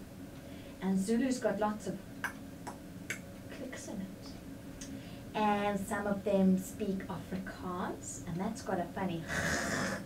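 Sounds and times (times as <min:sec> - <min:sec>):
woman making tongue clicks: 0:02.2 - 0:03.2.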